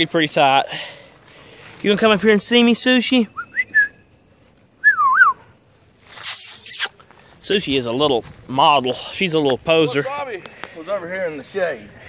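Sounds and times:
person whistling: 0:03.4 - 0:04.0, 0:04.8 - 0:05.4.

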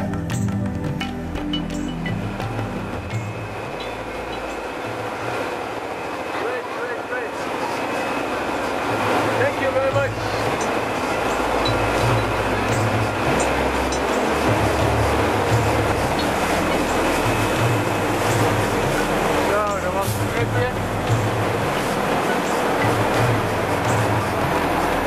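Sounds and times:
boat engine running: 0:00.0 - 0:25.0
water rushing from wake: 0:00.0 - 0:25.0
wind: 0:00.0 - 0:25.0.

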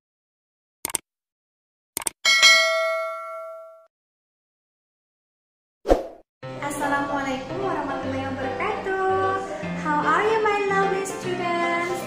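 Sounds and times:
bright bell ding: 0:02.3 - 0:03.9.

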